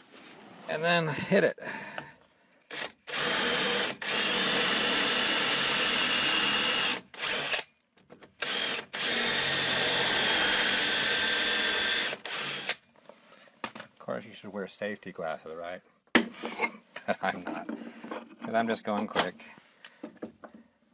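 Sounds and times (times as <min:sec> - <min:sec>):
drill boring into wood: 0:02.7 - 0:07.7, 0:08.4 - 0:12.8.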